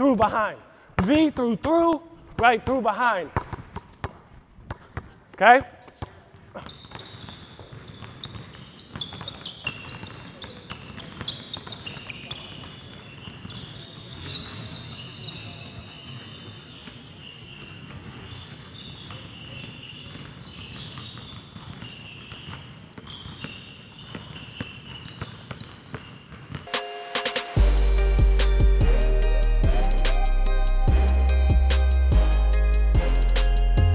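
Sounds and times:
basketballs bouncing on hardwood: 1.0s - 13.6s
loud music with drum beat: 26.7s - 33.9s.

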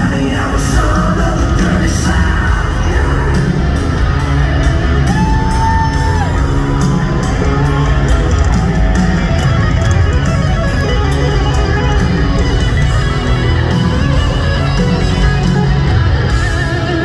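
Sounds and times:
live rock band playing: 0.0s - 17.0s.

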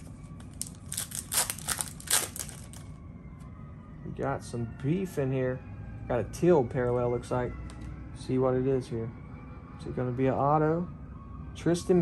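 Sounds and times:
foil wrapper crinkling: 0.0s - 3.0s.

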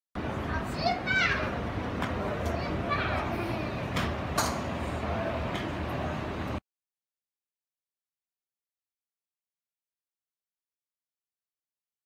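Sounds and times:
children's voices: 0.4s - 4.1s
child's high-pitched call: 0.5s - 1.5s.

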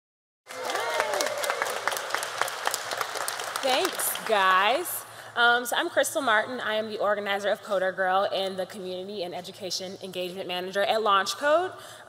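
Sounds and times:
voices over applause: 0.5s - 4.8s
audience applauding: 0.5s - 4.9s.

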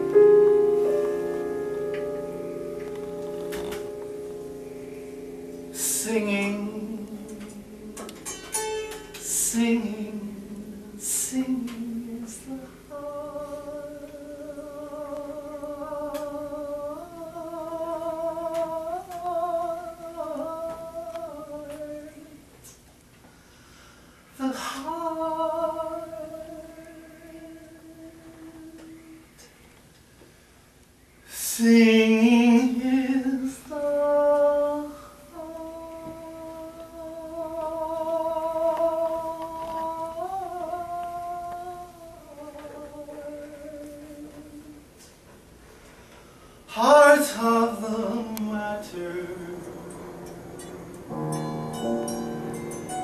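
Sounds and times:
person singing wordless notes: 0.0s - 22.5s, 31.5s - 45.0s, 46.7s - 53.0s
person humming unaccompanied: 5.6s - 22.5s, 31.6s - 44.9s, 46.7s - 53.0s.

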